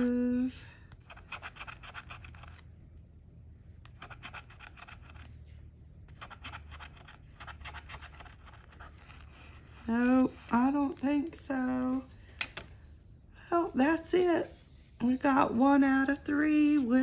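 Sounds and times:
metal scraping lottery ticket: 3.9s - 5.4s.

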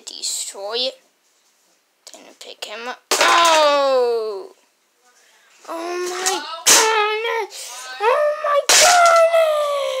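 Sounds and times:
toy figures knocking over: 3.1s - 3.8s, 8.7s - 9.4s.

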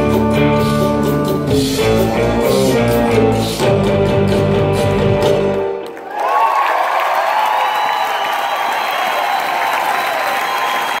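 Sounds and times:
crowd applauding: 5.5s - 11.0s.

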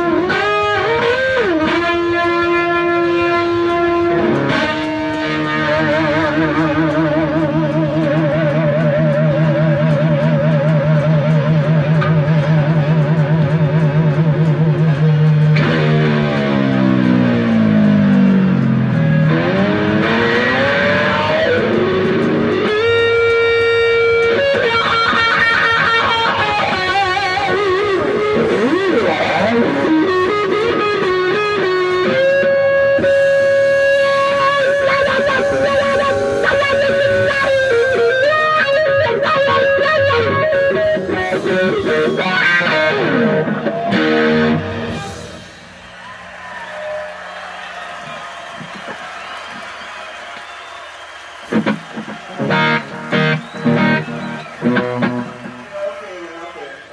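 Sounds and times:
distorted electric guitar lead: 0.0s - 47.1s, 51.4s - 56.9s.

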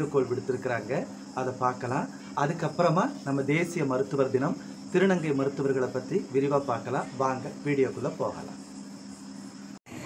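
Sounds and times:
crickets chirring: 0.0s - 9.8s.

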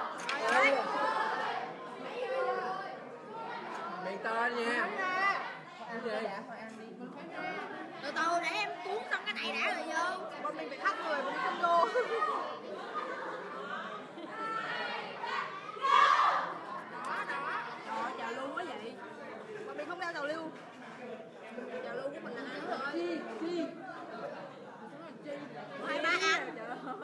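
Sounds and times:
people chattering: 0.0s - 27.0s.

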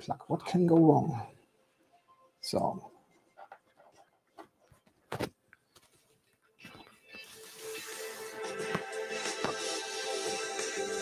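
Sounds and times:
melody from small speakers: 6.7s - 11.0s.

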